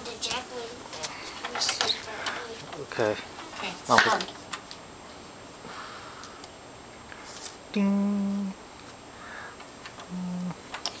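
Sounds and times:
person humming a note: 0:07.7 - 0:08.6, 0:10.1 - 0:10.6.

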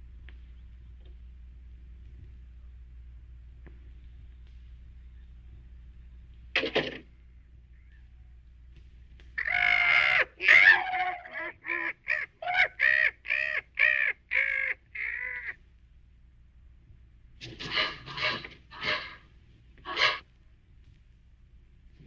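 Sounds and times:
crow cawing harshly: 0:09.4 - 0:15.6, 0:17.6 - 0:19.3, 0:19.9 - 0:20.2.

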